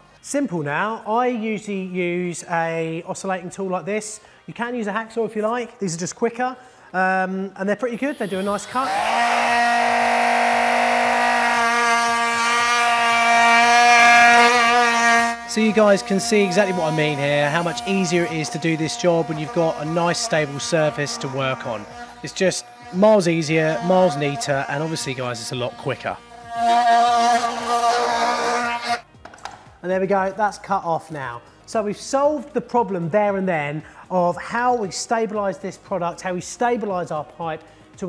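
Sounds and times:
multi-tool cutting plastic pipe: 0:08.1 - 0:29.6.

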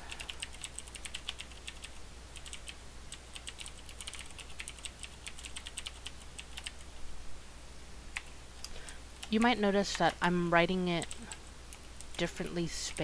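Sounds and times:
faint low hum: 0:00.0 - 0:13.0
computer keyboard typing: 0:00.1 - 0:06.8, 0:08.2 - 0:12.3.

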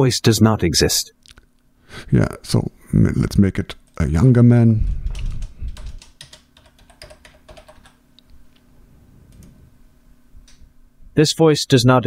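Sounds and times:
computer keyboard typing: 0:05.1 - 0:08.0.

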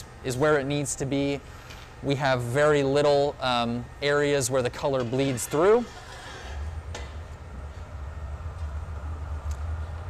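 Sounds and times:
gas burners roaring: 0:00.0 - 0:10.0
ventilation: 0:00.0 - 0:10.0.

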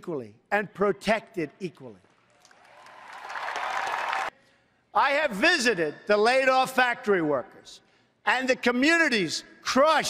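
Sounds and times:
crowd applauding: 0:02.3 - 0:04.3.

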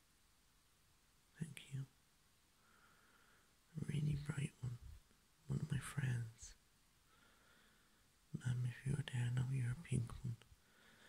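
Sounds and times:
person whispering: 0:01.4 - 0:01.9, 0:03.7 - 0:06.6, 0:08.4 - 0:10.5.

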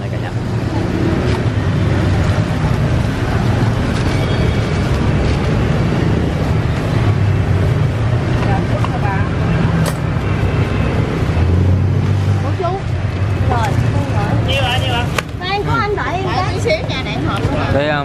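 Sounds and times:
people chattering: 0:00.0 - 0:18.0
street traffic engines: 0:00.0 - 0:18.0.

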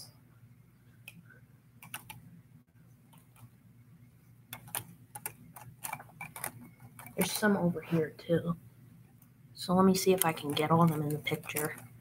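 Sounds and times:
plastic helmets clicking together: 0:04.6 - 0:07.3.

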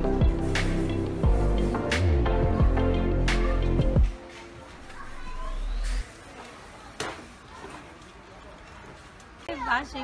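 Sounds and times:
faint indistinct voices: 0:02.4 - 0:10.0.

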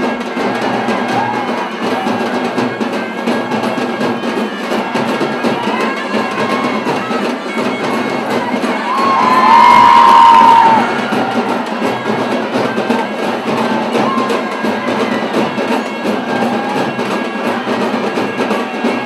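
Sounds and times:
crowd cheering and shouting: 0:00.0 - 0:19.0
music: 0:00.0 - 0:19.0.

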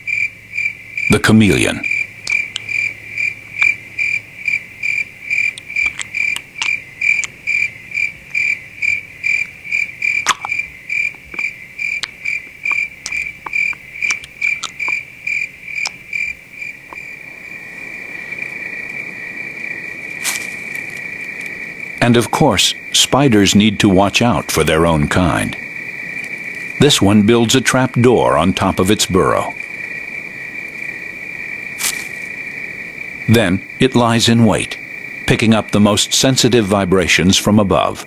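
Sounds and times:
cricket chirping: 0:00.0 - 0:38.0
faint clicks: 0:02.2 - 0:02.8, 0:05.5 - 0:07.4, 0:10.2 - 0:15.0.

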